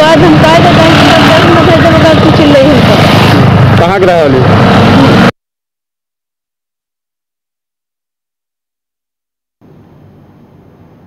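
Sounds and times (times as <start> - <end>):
woman speaking: 0.0 - 2.9
road traffic rumble: 0.0 - 5.4, 9.6 - 11.0.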